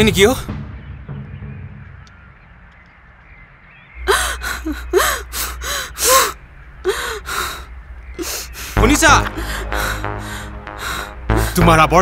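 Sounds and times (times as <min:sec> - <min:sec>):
woman moaning: 0:04.0 - 0:07.6.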